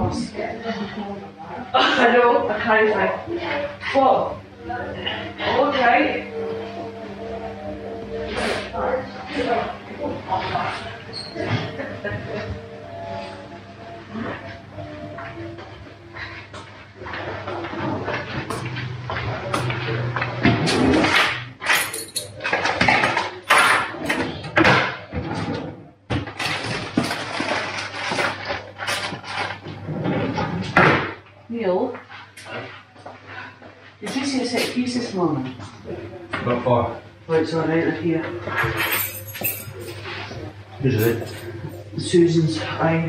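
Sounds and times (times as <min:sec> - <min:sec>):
indistinct talk: 0:00.0 - 0:15.4
low steady hum: 0:33.3 - 0:43.0.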